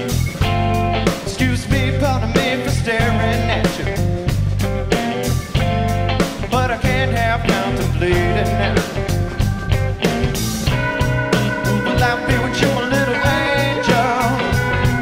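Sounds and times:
blues-rock band playing: 0:00.0 - 0:15.0
electric guitar with bent notes: 0:00.0 - 0:15.0.

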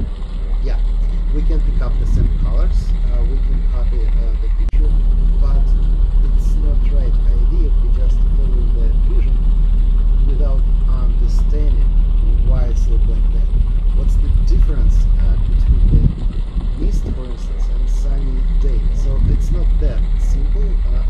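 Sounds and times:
people talking: 0:00.0 - 0:09.4, 0:10.3 - 0:16.0, 0:16.8 - 0:21.0
boat engine rumbling: 0:00.0 - 0:21.0.

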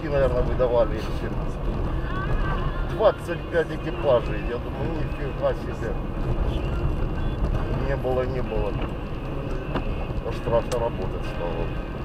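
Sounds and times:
car engine rumble: 0:00.0 - 0:12.0
tyres on a wet road: 0:00.0 - 0:12.0.

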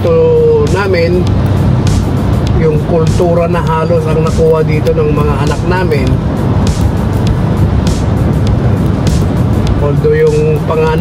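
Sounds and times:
background music: 0:00.0 - 0:11.0
car cabin rumble: 0:00.0 - 0:11.0.

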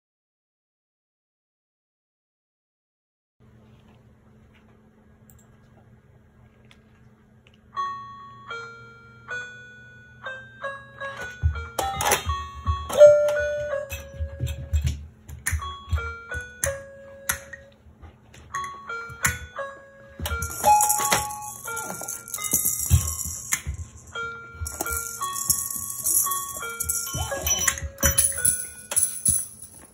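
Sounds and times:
low room hum: 0:03.4 - 0:29.9
bell-like melody: 0:18.5 - 0:29.9
toy maraca rattling: 0:20.4 - 0:29.8.

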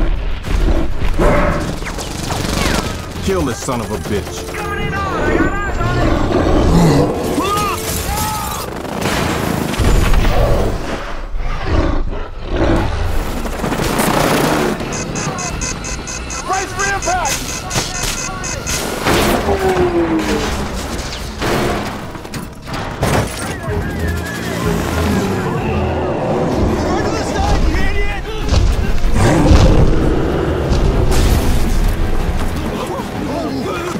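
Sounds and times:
film music score: 0:00.0 - 0:33.9
helicopter noise: 0:01.4 - 0:07.3, 0:12.9 - 0:20.7, 0:23.4 - 0:27.8.

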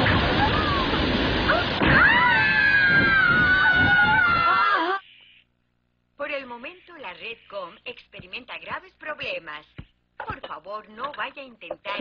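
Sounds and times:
explosion effect: 0:00.0 - 0:04.2
cartoon character screaming: 0:01.5 - 0:05.0.

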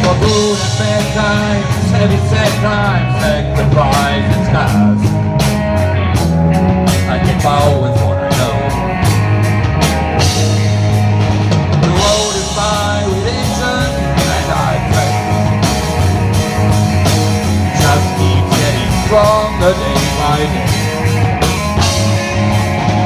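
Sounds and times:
live rock band playing: 0:00.0 - 0:23.0.

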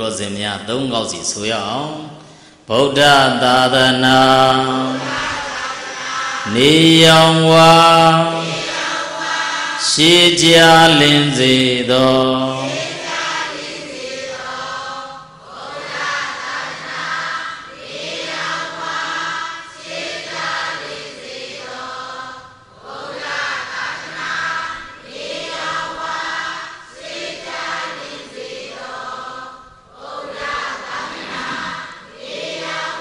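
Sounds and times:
voices chanting: 0:02.8 - 0:33.0.

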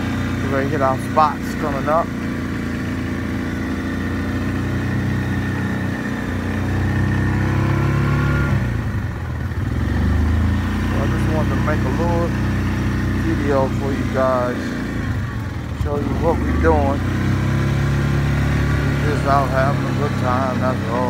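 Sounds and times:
atv engine pulling through snow: 0:00.0 - 0:21.0.

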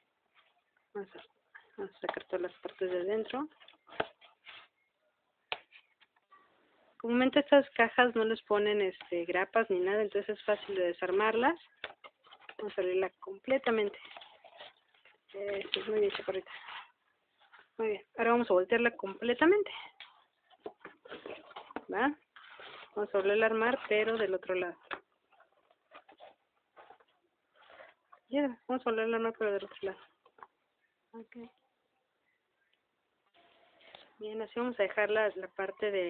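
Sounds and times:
cardboard crackling and scraping: 0:10.3 - 0:17.8, 0:19.7 - 0:28.2.

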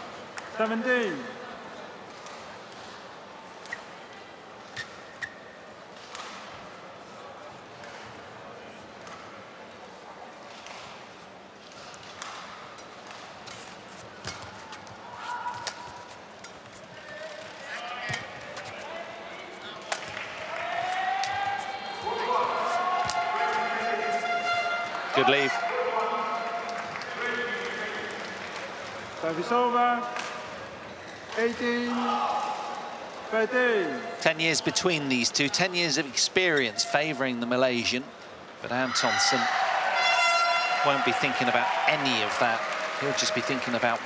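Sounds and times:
shoes squeaking on court: 0:04.7 - 0:05.6
crowd voices: 0:13.6 - 0:44.0.

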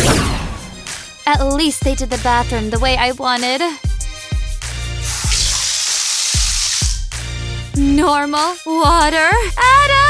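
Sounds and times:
background music with steady beat: 0:00.4 - 0:10.0
water running from tap into bathtub: 0:05.0 - 0:07.1.

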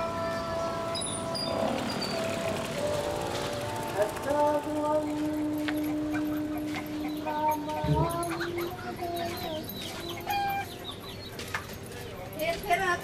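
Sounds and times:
chickens clucking: 0:04.7 - 0:12.2.

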